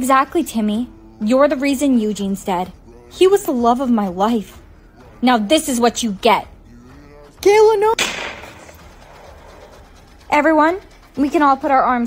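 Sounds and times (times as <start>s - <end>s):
gunshot bang: 8.0s - 8.8s.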